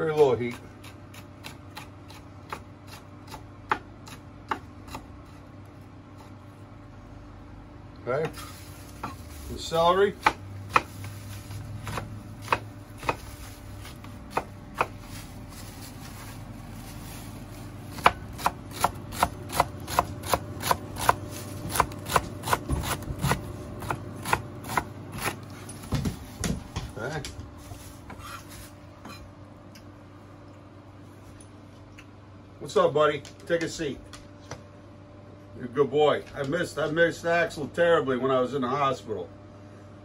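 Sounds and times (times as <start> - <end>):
knife chopping on wooden board: 0.2 - 5.4, 10.1 - 11.2, 11.8 - 15.1, 17.9 - 26.9.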